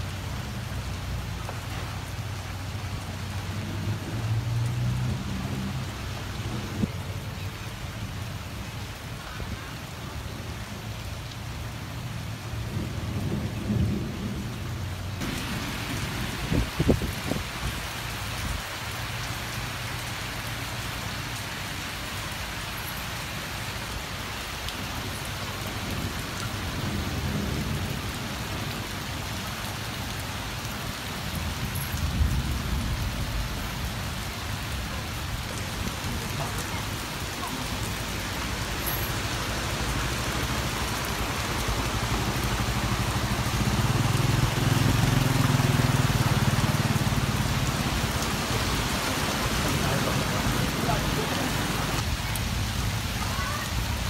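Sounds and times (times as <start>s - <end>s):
heavy rain on flooded pavement: 0.0s - 54.0s.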